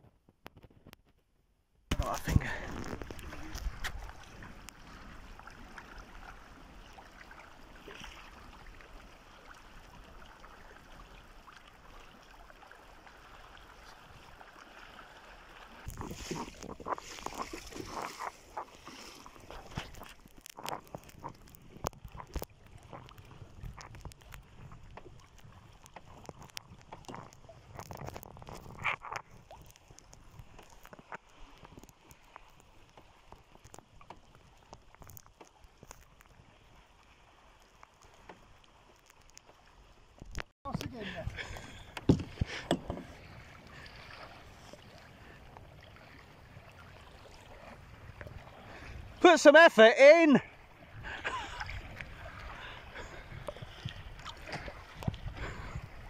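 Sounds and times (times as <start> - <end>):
steady wash of water: 1.9 - 20.2, 40.7 - 56.0
water slapping against hull: 1.9 - 49.4, 50.1 - 56.0
paddle splashes and knocks: 1.9 - 56.0.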